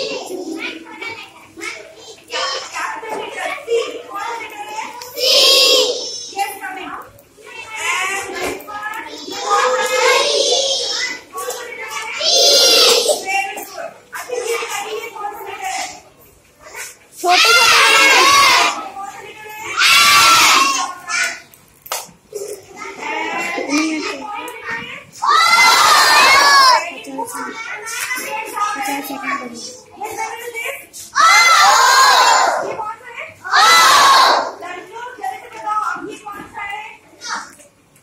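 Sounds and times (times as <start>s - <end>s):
children shouting in chorus: 17.3s - 18.9s, 19.6s - 21.4s, 25.2s - 26.9s, 31.2s - 32.7s, 33.4s - 34.6s.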